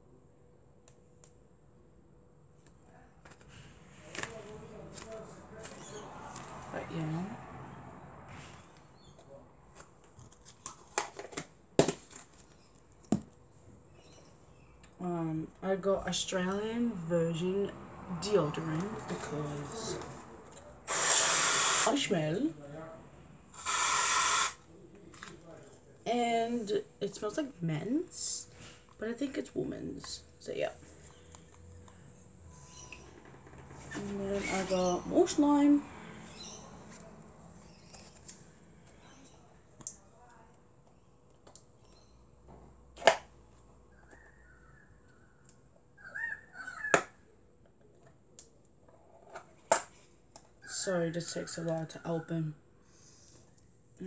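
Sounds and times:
aerosol deodorant spray hiss: 20.9 - 22.0, 23.6 - 24.6.

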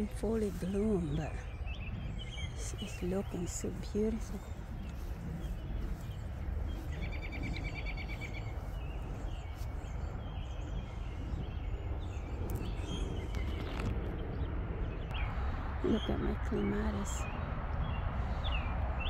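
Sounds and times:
low rumble: 0.0 - 19.0
small birds chirping: 0.0 - 19.0
bird trill: 1.0 - 13.8.

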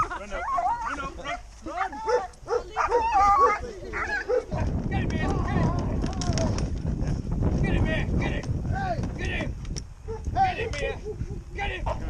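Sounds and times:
dog barking: 1.2 - 4.7, 10.1 - 11.1
wind rumble on microphone: 2.4 - 12.0.

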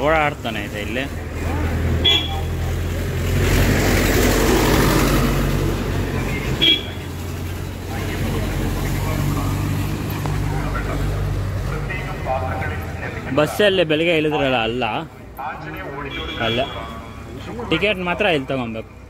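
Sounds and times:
tractor diesel engine running: 0.0 - 16.1.

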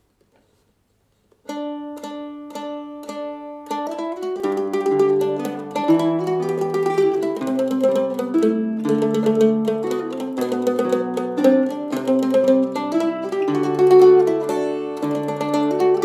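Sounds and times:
mandolin plucked notes: 1.5 - 16.0
tenor guitar chords: 1.5 - 16.0.

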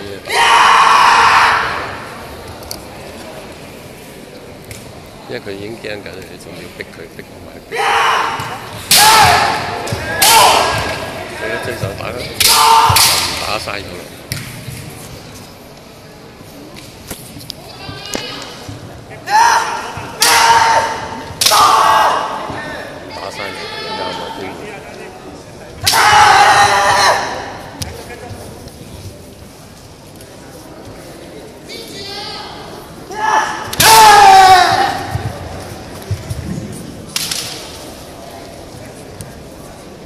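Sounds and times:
bamboo sword striking crack: 37.1 - 37.7.

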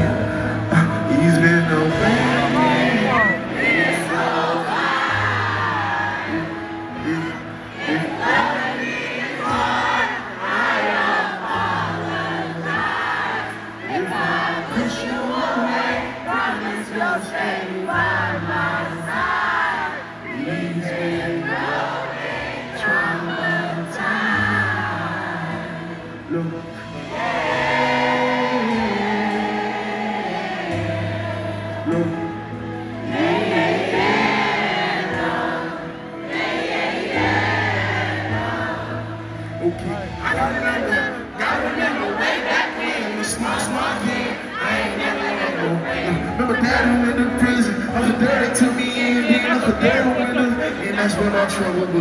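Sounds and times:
arena crowd: 0.0 - 52.0
keyboard chords: 0.0 - 52.0
live band music: 0.0 - 52.0.

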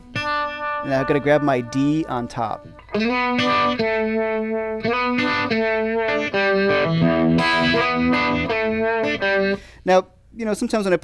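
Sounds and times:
electric guitar blues-rock riff: 0.0 - 9.7.

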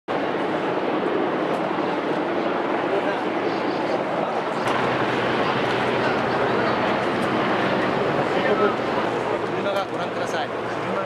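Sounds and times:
outdoor background noise: 0.1 - 11.0.

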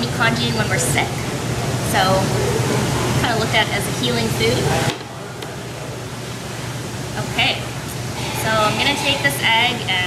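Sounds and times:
fan rushing hum: 0.0 - 10.0.

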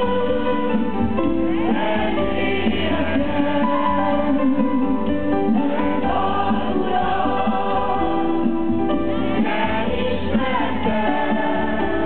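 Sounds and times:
voices singing along: 0.0 - 4.9, 5.5 - 12.0.

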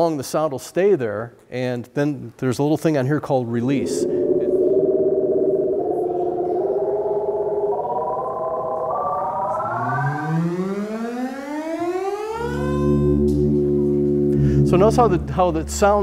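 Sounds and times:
analog synthesizer rising glide: 3.6 - 16.0
low steady synthesizer note: 3.6 - 16.0.

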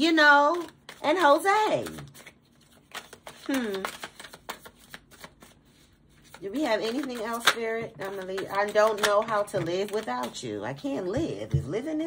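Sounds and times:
cards being shuffled: 0.4 - 10.4.

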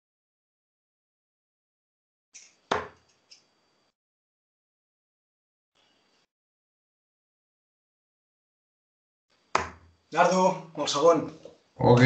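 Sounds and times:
sharp knocks: 2.7 - 3.0, 9.5 - 9.9.

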